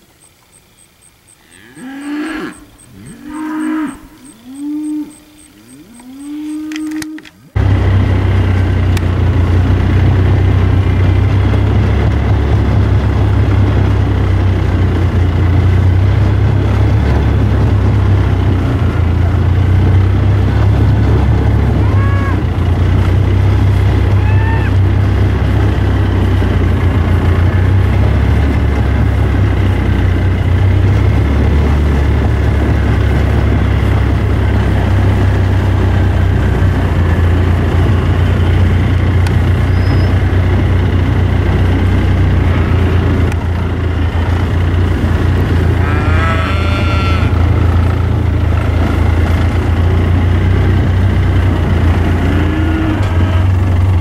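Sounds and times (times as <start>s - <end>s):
steers mooing: 1.3s - 54.0s
loud steady low rumble: 2.3s - 54.0s.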